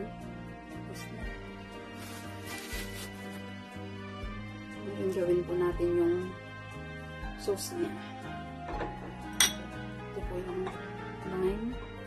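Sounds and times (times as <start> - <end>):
ceramic bowl clinking down: 8.7 - 9.7.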